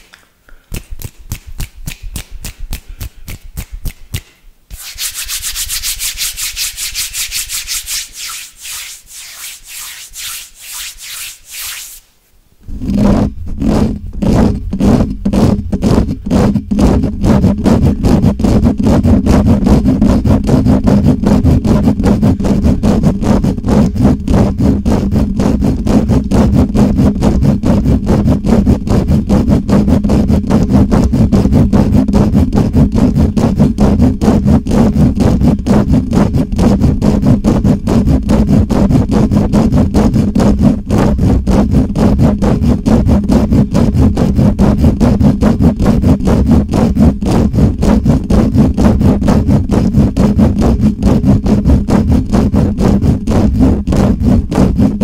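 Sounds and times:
hands rubbing: 0.0s - 12.1s
fingertips scratching microphone grille: 4.7s - 12.1s, 12.8s - 55.0s.

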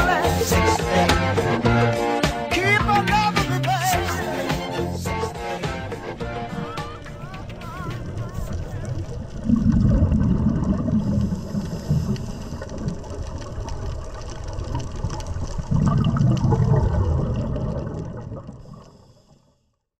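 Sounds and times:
scuba regulator bubbling underwater: 6.1s - 19.6s.

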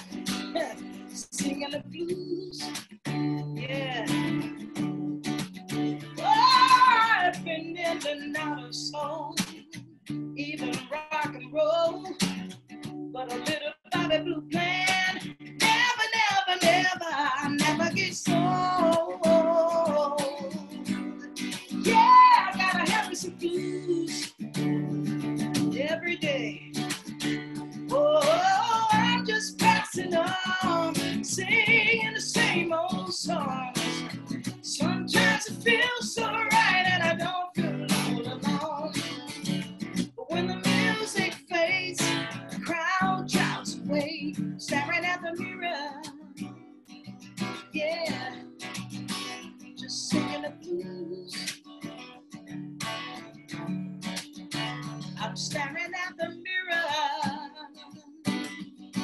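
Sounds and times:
strummed acoustic guitar: 0.0s - 59.0s
woman singing blues: 0.0s - 59.0s.

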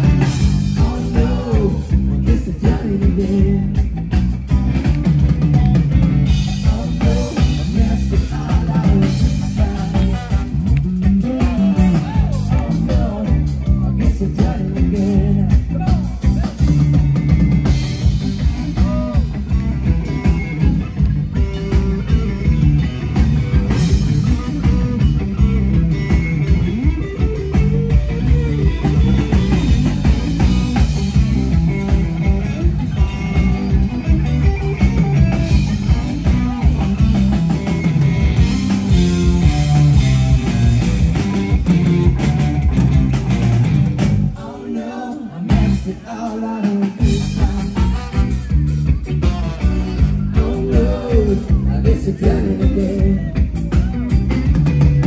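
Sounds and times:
bass guitar: 0.0s - 55.0s
drum kit steady beat: 0.0s - 55.0s
electric guitars: 0.0s - 55.0s.

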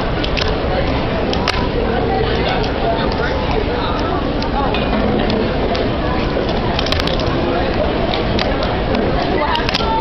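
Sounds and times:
loud background noise: 0.0s - 10.0s.

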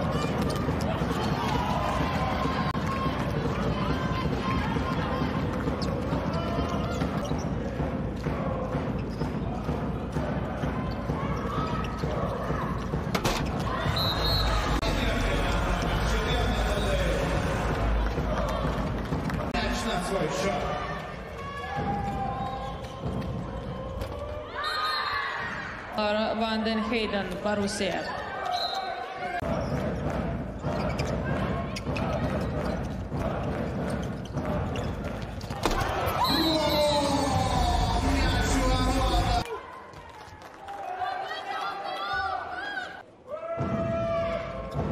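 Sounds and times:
voices shouting in a hall: 0.0s - 26.1s, 26.7s - 44.9s
players calling out: 35.7s - 39.5s.

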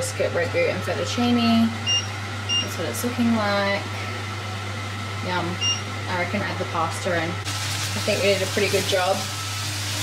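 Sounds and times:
kitchen appliance humming: 0.0s - 10.0s.

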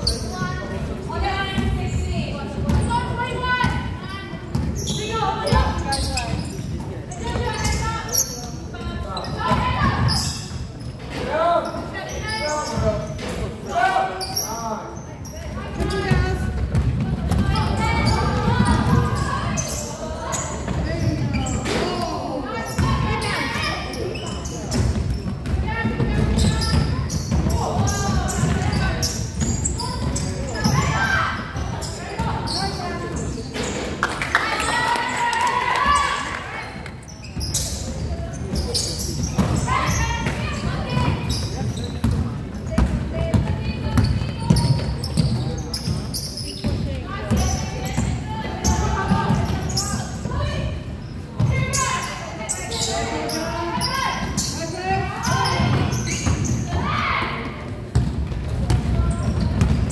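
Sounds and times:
voices echoing in hall: 0.0s - 59.9s.

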